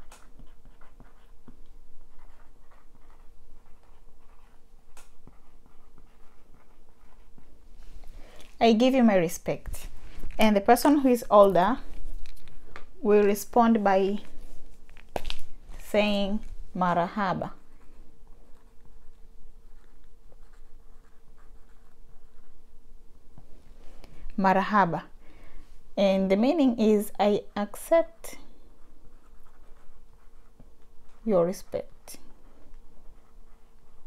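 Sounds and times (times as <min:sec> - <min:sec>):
marker scratching on whiteboard: 0:00.0 - 0:07.6, 0:18.4 - 0:22.6, 0:27.6 - 0:34.0
faint steady hum: 0:00.0 - 0:34.0.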